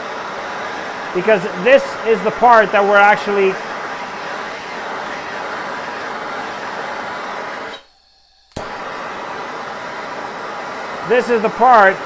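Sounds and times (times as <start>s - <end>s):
torch flame hissing: 0.0s - 12.0s.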